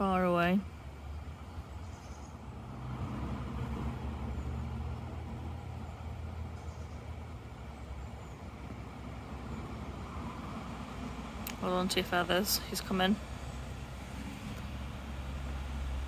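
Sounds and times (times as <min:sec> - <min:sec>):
vehicle engine rumble: 0:00.0 - 0:16.0.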